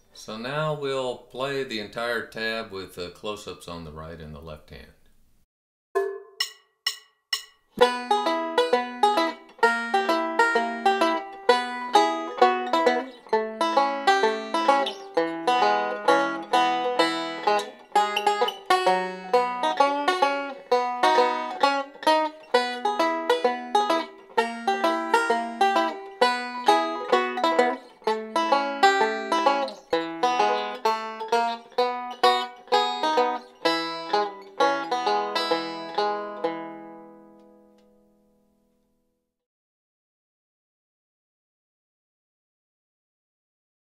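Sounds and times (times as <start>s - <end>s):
banjo fingerpicking: 6.0s - 38.0s.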